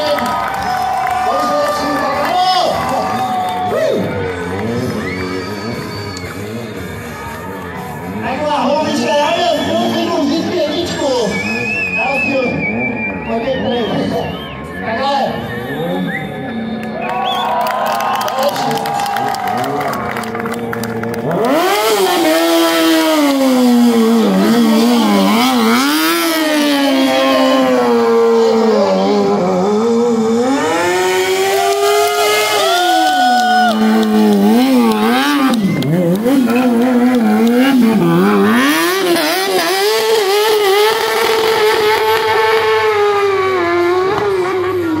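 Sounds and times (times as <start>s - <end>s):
motorcycle engine revving: 0.0s - 17.4s, 18.6s - 45.0s.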